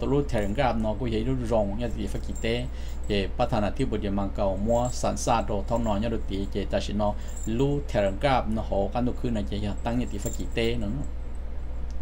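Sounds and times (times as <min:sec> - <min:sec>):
man speaking: 0:00.0 - 0:11.1
steady low hum: 0:00.0 - 0:12.0.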